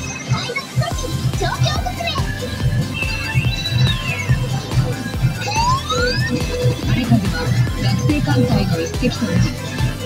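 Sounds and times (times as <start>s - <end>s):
pachinko machine music: 0.0s - 10.0s.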